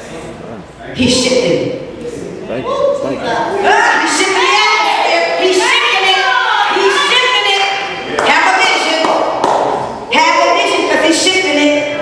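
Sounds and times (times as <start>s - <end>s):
woman preaching into microphone: 1.0s - 1.9s, 3.3s - 9.4s, 10.0s - 12.0s.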